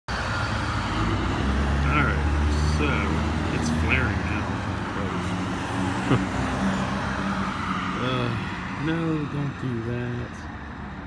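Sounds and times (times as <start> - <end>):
car driving past: 0.2 - 8.8.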